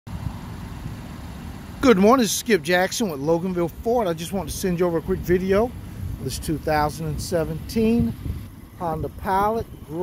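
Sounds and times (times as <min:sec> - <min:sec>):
man speaking: 0:01.8 - 0:08.2, 0:08.8 - 0:10.0.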